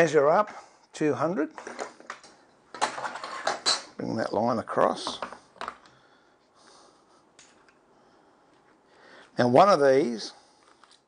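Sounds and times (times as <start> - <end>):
hand tools clattering on workbench: 1.6 - 4.0.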